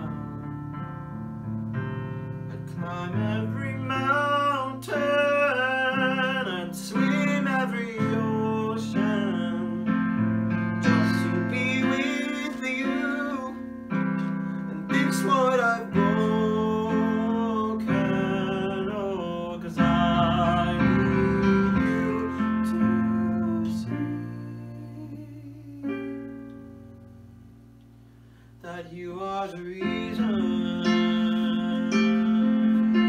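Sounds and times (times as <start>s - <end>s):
person singing: 0.0s - 0.7s, 2.5s - 26.4s, 28.6s - 33.0s.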